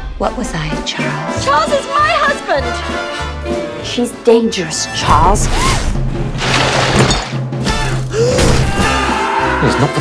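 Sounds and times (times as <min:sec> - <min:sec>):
trailer score music: 0:00.0 - 0:10.0
crash and shatter effect: 0:05.8 - 0:07.8.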